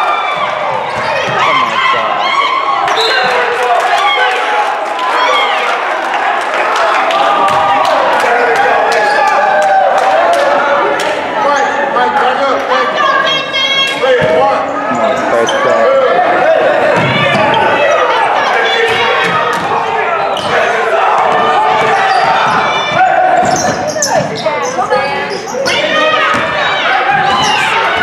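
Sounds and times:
players and spectators shouting: 0:00.0 - 0:28.0.

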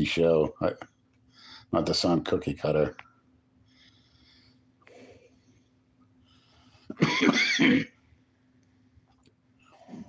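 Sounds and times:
man clearing his throat: 0:06.9 - 0:08.0.

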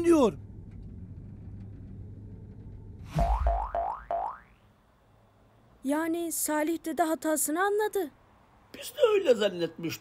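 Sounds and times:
steady low rumble: 0:00.0 - 0:03.8
rising boing-like tones: 0:03.1 - 0:04.6.

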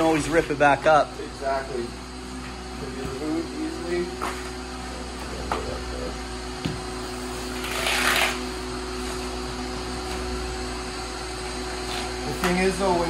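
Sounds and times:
machine humming: 0:00.0 - 0:13.0.

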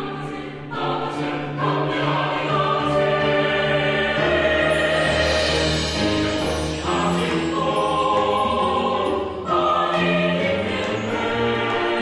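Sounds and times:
mixed choir singing: 0:00.0 - 0:12.0
piano accompaniment: 0:00.8 - 0:12.0.

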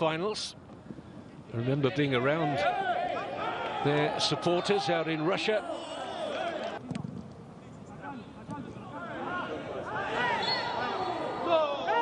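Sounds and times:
footballers shouting: 0:01.6 - 0:06.8, 0:08.1 - 0:12.0.

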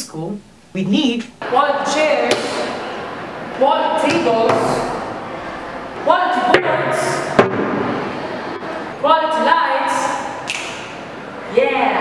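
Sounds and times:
reverberant hiss: 0:00.0 - 0:12.0
sharp knock: 0:07.4 - 0:08.0.

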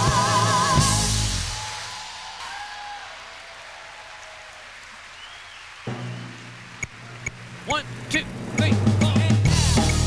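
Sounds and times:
audience applause: 0:01.0 - 0:07.6.

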